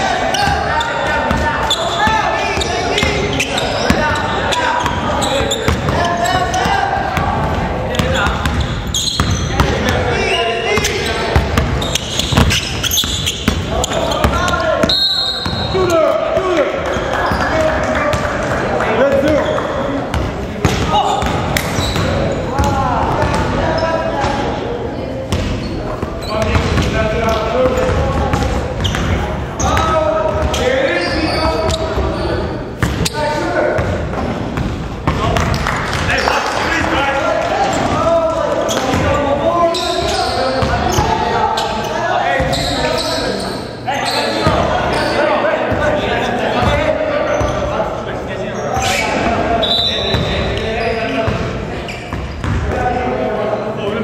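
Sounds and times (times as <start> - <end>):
sneakers squeaking: 0.0 - 53.1
players' voices in gymnasium: 0.0 - 54.0
basketball bouncing on wooden floor: 7.2 - 10.0, 10.8 - 14.4.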